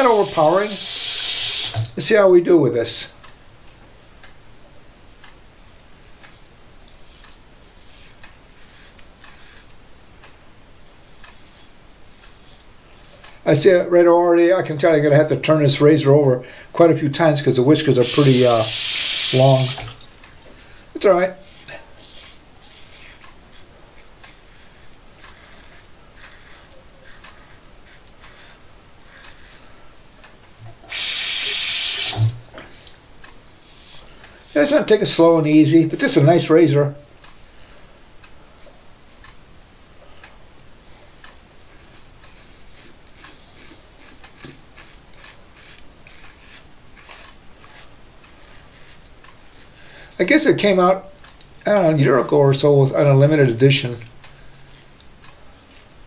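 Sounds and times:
razor scraping whiskers: 0.0s - 1.9s, 11.0s - 13.4s, 18.0s - 19.9s, 21.4s - 29.9s, 41.7s - 49.8s
sink tap running: 0.0s - 2.0s, 18.0s - 20.0s, 30.8s - 32.4s
faint regular ticking: 6.1s - 13.6s, 18.0s - 35.2s, 37.2s - 51.7s.

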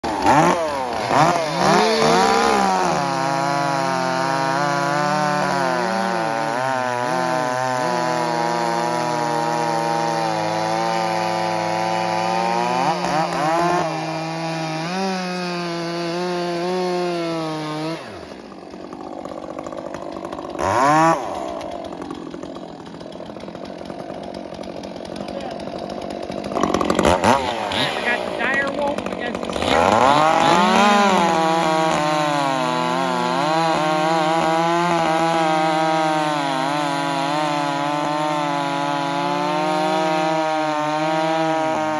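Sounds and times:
chainsaws cutting log at full throttle: 0.0s - 41.9s.

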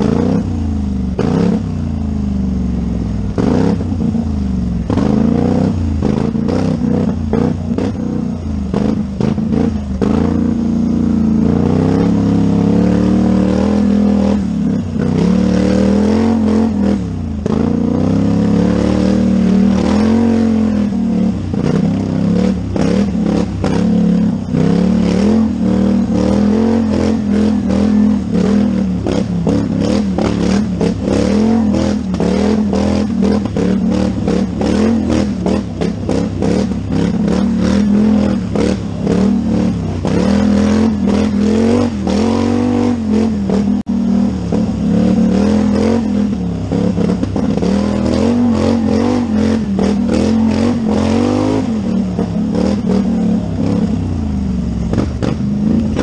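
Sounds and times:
quad engine revving: 0.0s - 56.0s.

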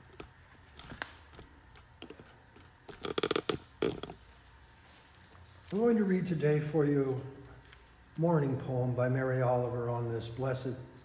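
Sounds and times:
handling clicks and rustles: 0.0s - 5.8s.

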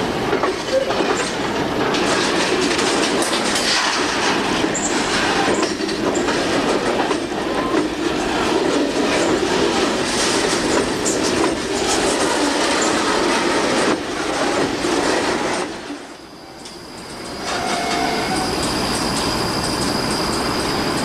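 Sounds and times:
train wheels rumbling on bridge: 0.0s - 21.0s
high wheel squeals: 16.0s - 21.0s.

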